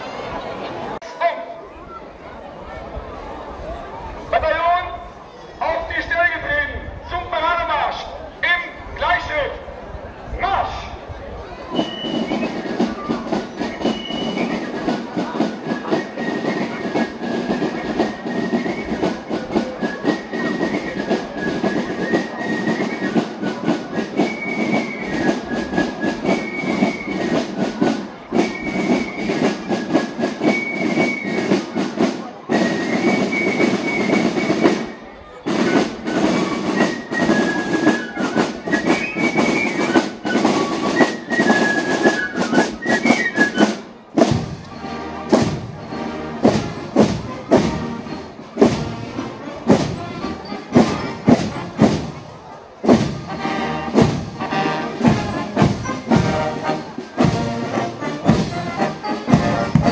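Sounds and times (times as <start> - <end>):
flute melody: 11.5 - 59.9
snare drums beating: 11.8 - 59.9.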